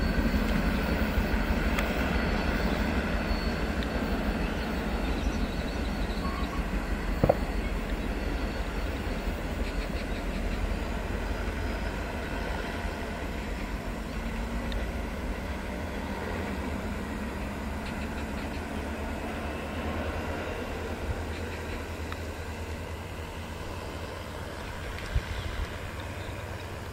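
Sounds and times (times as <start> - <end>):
diesel train rumbling: 0.0 - 26.9.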